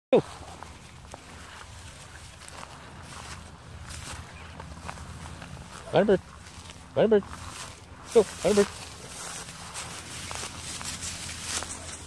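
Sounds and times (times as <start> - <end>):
footsteps through dry grass: 0.1 - 12.0.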